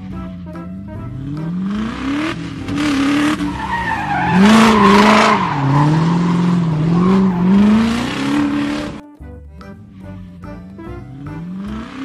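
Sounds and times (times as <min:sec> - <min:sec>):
race car engine revving: 0:00.0 - 0:09.0, 0:11.1 - 0:12.0
tyre squeal: 0:03.2 - 0:08.8.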